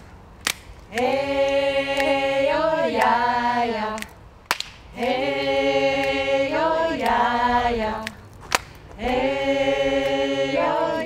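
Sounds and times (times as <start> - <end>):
group singing a cappella: 0.9 - 4.2, 4.9 - 8.2, 8.9 - 11.0.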